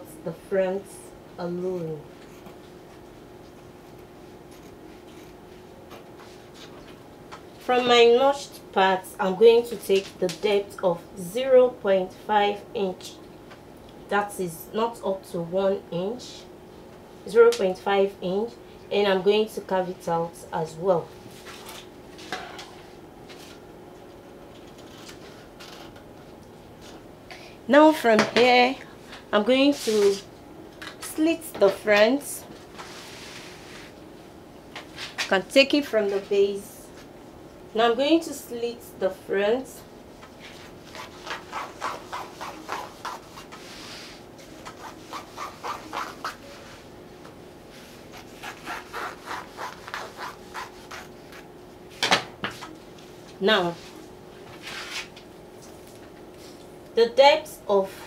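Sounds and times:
scissors snipping fabric: 48.4 - 51.4.

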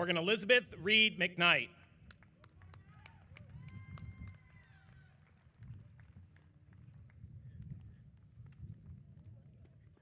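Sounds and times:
wind buffeting microphone: 2.8 - 10.0.

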